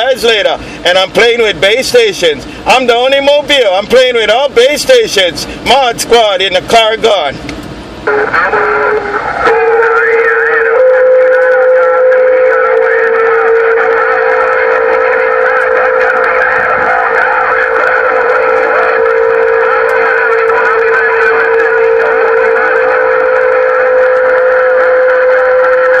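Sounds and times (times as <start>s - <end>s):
garbled radio signals warbling: 8.1s - 26.0s
steady radio whistle: 8.1s - 26.0s.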